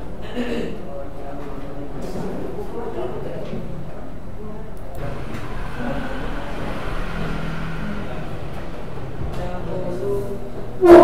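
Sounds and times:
low hum: 5.0s - 10.8s.

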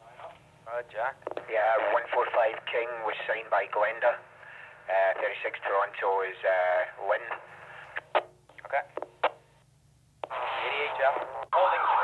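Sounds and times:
voice over two-way radio: 1.4s - 4.2s, 10.3s - 12.0s.

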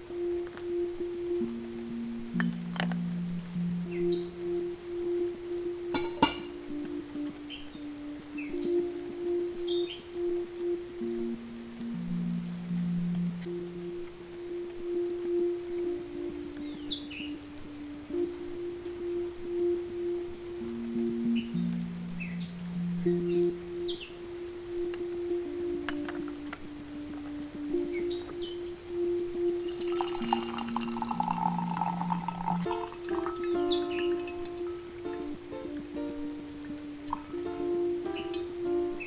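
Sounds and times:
slow soft background music: 0.0s - 39.0s
birds chirping: 0.3s - 13.6s, 14.9s - 39.0s.

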